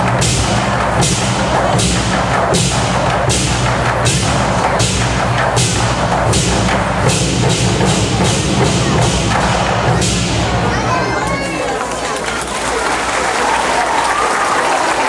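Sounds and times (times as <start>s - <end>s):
hand cymbals crashing: 0.0s - 11.6s
large drums beaten hard: 0.0s - 12.0s.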